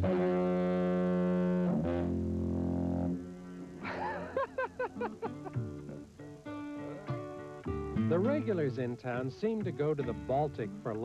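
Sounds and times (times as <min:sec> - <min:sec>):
two-tone foghorn blast: 0:00.0 - 0:03.8.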